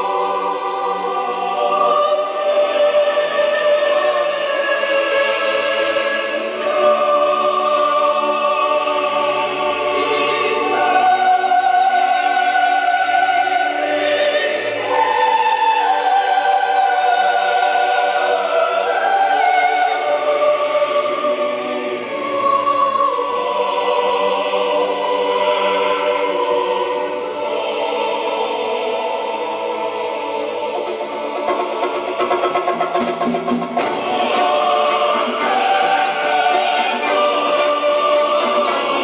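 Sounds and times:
choir singing with orchestra: 0:00.0 - 0:39.0.

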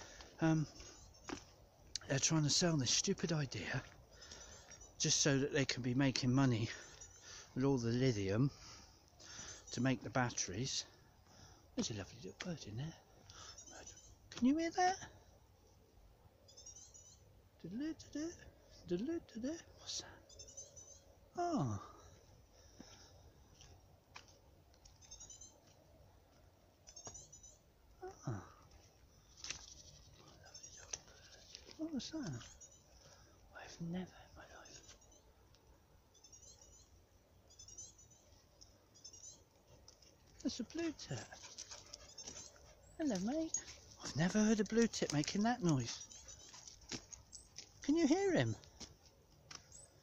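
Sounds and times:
faint high bird calls: 0:06.0 - 0:15.4, 0:16.4 - 0:23.8, 0:24.8 - 0:26.0, 0:26.7 - 0:48.7
bird chirping rapidly: 0:16.5 - 0:17.3, 0:20.2 - 0:21.1, 0:36.1 - 0:39.5, 0:40.8 - 0:46.6
person exclaiming: 0:21.4 - 0:21.9, 0:28.0 - 0:28.5.

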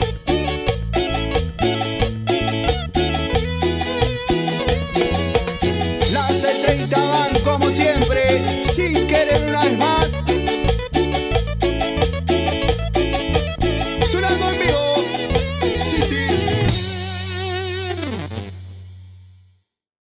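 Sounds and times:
metal guiro scraping: 0:00.0 - 0:18.5
keyboard: 0:00.0 - 0:18.7
electric guitar: 0:00.0 - 0:19.3
bass: 0:00.0 - 0:19.7.

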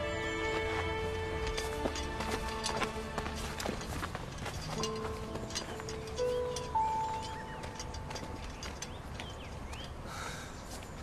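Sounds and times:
held notes background music: 0:00.0 - 0:09.8.

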